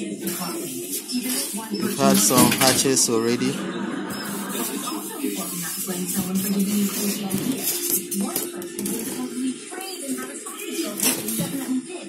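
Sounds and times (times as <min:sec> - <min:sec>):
music: 0:05.5 - 0:12.0.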